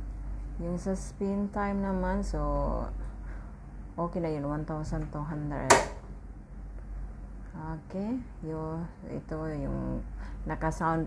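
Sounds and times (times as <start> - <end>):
woman's voice: 0.6 - 3.0, 4.0 - 5.9, 7.5 - 11.0
washing machine button click: 5.7 - 6.0.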